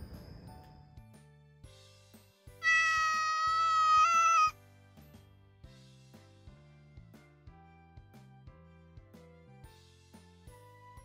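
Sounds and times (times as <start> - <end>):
soft background music: 0.0 - 11.0
cat meowing: 2.6 - 4.5.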